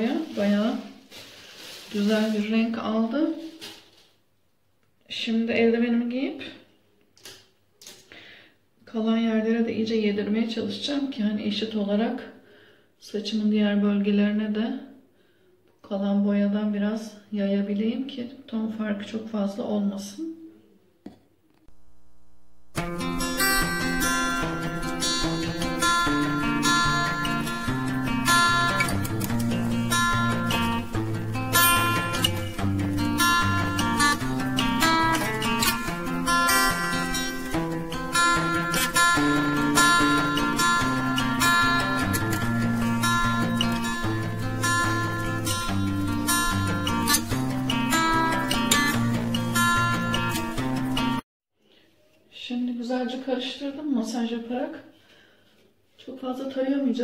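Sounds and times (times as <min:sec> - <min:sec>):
acoustic guitar instrumental: 0:21.7 - 0:51.2.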